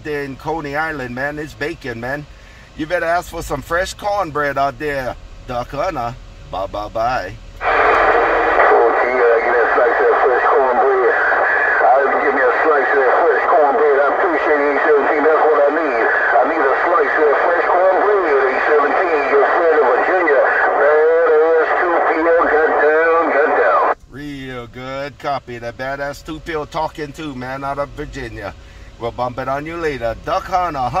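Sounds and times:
garbled man's voice over radio: 7.6 - 24.0.

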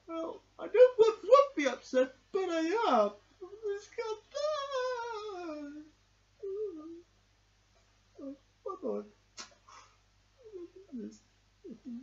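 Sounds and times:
man fake crying in high voice: 2.6 - 5.9
sniff: 9.4 - 10.0.

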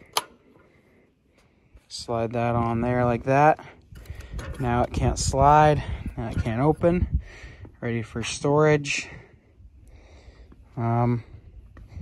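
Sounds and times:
metallic click of saw bracket: 0.1 - 0.4.

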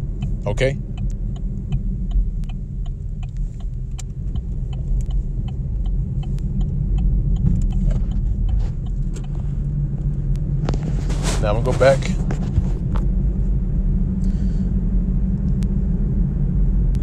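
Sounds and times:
light regular ticking: 0.0 - 10.6
steady low rumble: 0.0 - 17.0.

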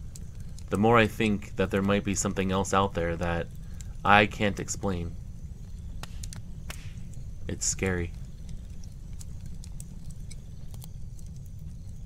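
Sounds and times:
wood fire crackling: 0.0 - 12.0.

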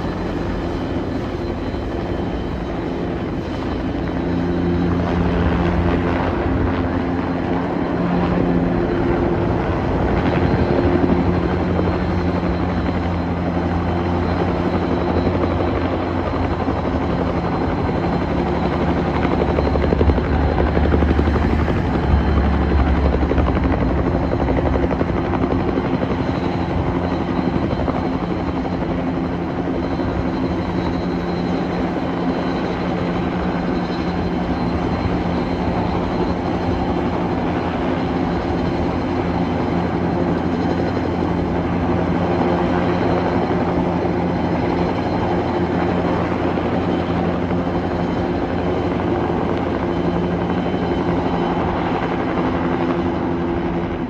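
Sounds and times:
helicopter rotor and engine: 0.0 - 54.0.

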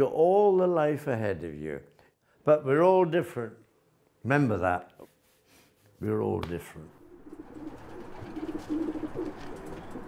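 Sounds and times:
pigeons cooing: 7.0 - 10.0.

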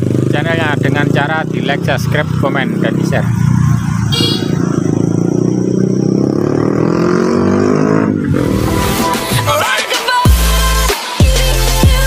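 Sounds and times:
motorbike passing by: 0.0 - 9.0.

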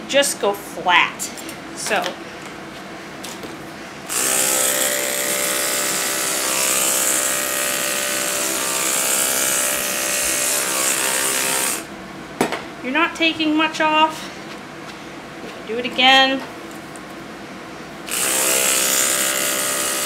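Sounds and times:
electric clippers buzzing: 4.1 - 11.9, 18.1 - 20.0.

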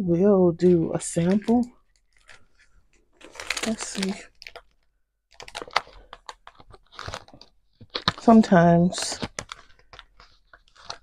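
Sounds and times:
plastic packaging crinkling: 1.1 - 11.0.

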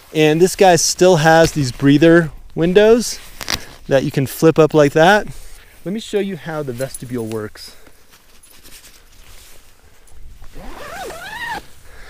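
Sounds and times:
nylon tent fabric rustling: 0.0 - 12.0
zipper being worked: 10.5 - 11.7.

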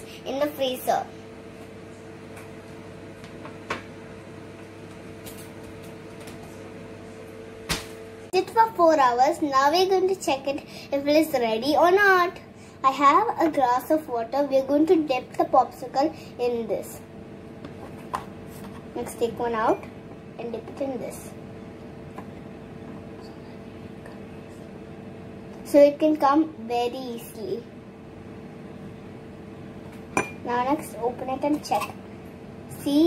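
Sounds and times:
appliance hum: 0.0 - 33.0.

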